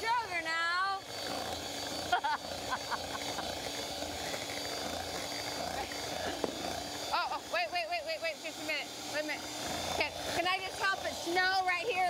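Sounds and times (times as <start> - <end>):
electric hand mixer whirring: 0.0 - 12.0.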